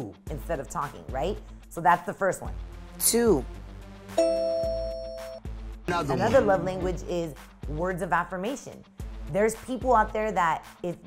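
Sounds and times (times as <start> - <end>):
background music: 0.0 - 11.0
bright chime chord: 4.2 - 5.4.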